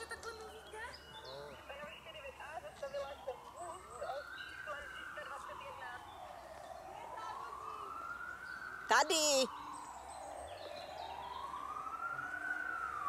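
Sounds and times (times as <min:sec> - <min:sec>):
siren wailing: 0:00.0 - 0:13.0.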